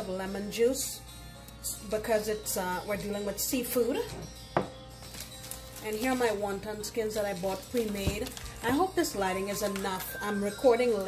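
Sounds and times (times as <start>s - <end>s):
knock on glass bowl ringing: 4.5s - 4.8s.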